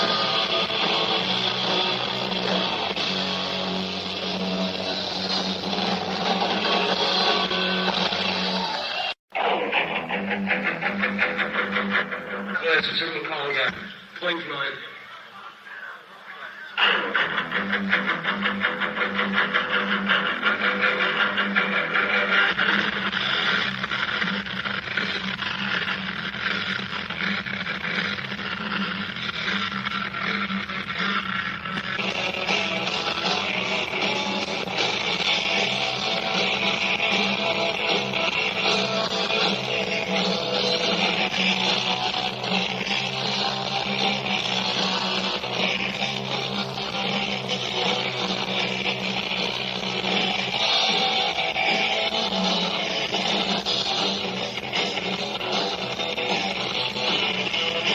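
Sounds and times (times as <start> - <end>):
rock band playing live: 0.0 - 13.0, 16.8 - 57.9.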